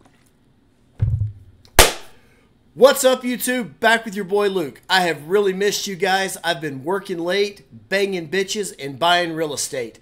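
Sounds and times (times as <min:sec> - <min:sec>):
low thump: 0:01.0 - 0:01.6.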